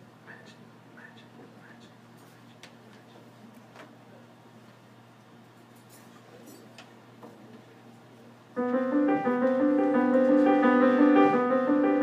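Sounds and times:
low room hum: 0:00.0 - 0:12.0
keyboard playing jazz chords: 0:08.6 - 0:12.0.

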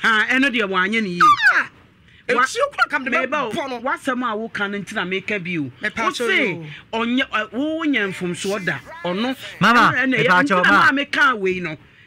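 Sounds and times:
people talking heatedly: 0:00.0 - 0:11.8.

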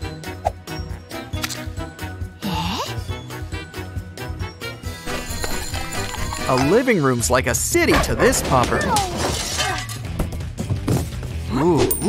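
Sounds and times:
background music: 0:00.0 - 0:12.0
crash: 0:07.9 - 0:10.4.

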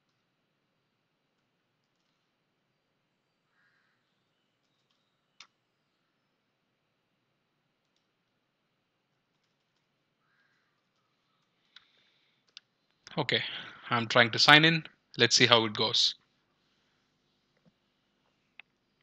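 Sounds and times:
keyboard clicks: 0:01.8 - 0:02.2, 0:04.6 - 0:05.6, 0:09.3 - 0:09.9.

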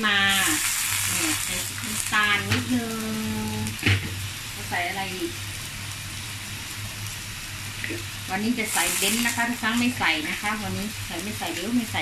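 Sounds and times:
clams sizzling in a wok: 0:00.0 - 0:12.0
low steady hum: 0:00.0 - 0:12.0.

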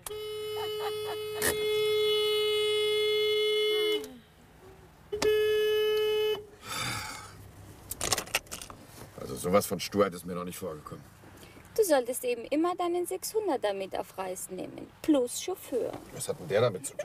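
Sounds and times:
car horn honking: 0:00.0 - 0:04.2, 0:05.1 - 0:06.8.

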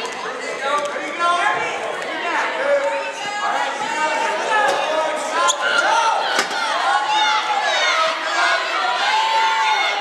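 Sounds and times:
voices shouting: 0:01.6 - 0:10.0.

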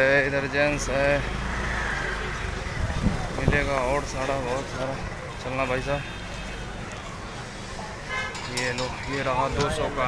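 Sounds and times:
distant crowd noise: 0:00.0 - 0:10.0
low rumble of traffic: 0:00.0 - 0:10.0.

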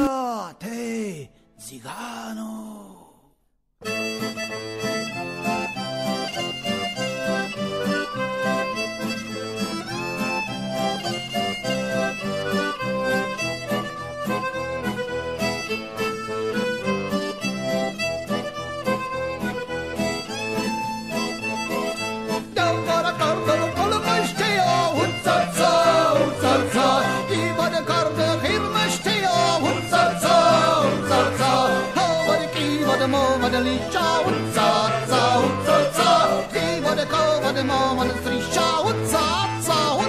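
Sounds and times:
folk band playing: 0:03.8 - 0:40.0
person singing: 0:21.7 - 0:40.0.

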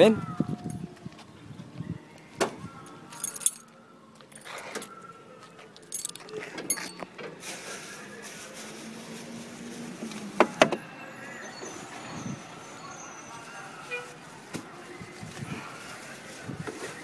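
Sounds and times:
objects clicking and clinking: 0:05.8 - 0:07.1.

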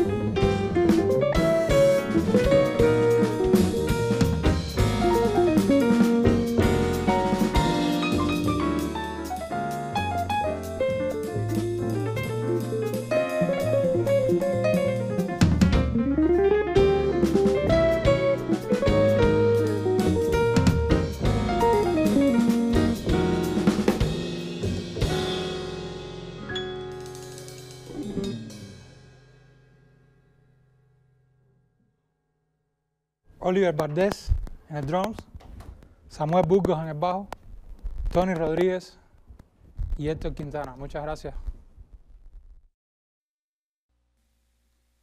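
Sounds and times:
jazz quartet playing: 0:00.0 - 0:29.1.

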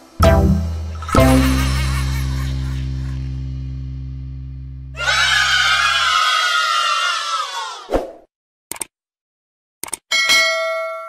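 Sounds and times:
music with low held notes: 0:00.0 - 0:05.0
children cheering: 0:05.0 - 0:07.9
sharp click: 0:08.7 - 0:08.9, 0:09.8 - 0:10.0.

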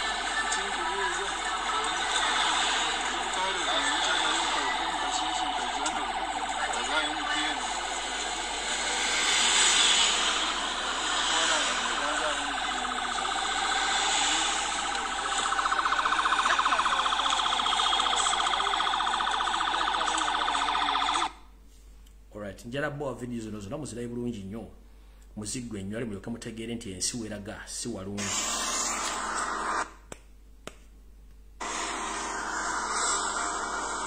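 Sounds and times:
road noise: 0:00.0 - 0:21.3, 0:31.6 - 0:34.0
siren: 0:00.0 - 0:21.5, 0:28.2 - 0:29.9, 0:31.6 - 0:34.0.

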